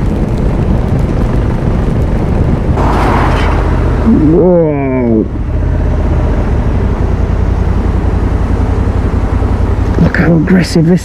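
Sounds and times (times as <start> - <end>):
wind noise on microphone: 0.0 - 7.2
motorcycle engine running: 0.0 - 11.0.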